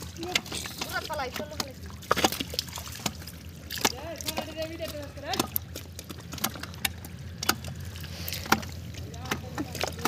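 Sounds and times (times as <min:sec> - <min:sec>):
low steady rumble: 0:00.0 - 0:10.0
wet mud splats: 0:00.0 - 0:10.0.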